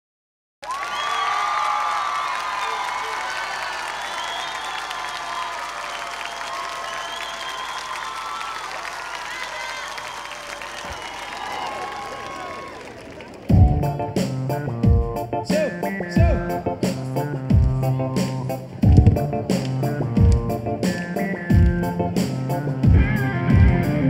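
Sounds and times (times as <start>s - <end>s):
audience applauding and cheering: 0.6s - 13.9s.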